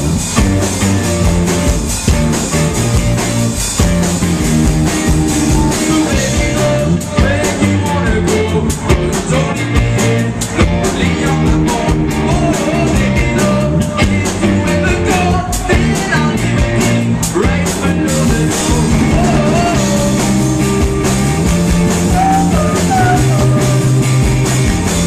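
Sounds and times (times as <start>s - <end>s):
rock band playing live: 0.0s - 25.0s
man singing lead vocals: 4.9s - 20.7s, 21.9s - 24.2s.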